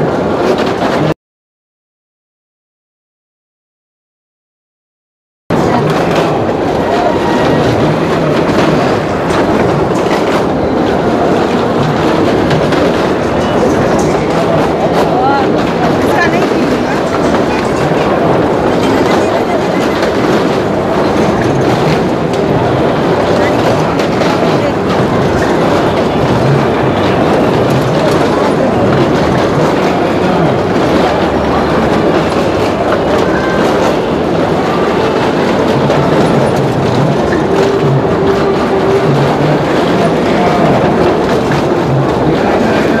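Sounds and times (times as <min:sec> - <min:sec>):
car engines rumbling: 0:05.5 - 0:43.0
tyres rolling over wooden planks: 0:05.5 - 0:43.0.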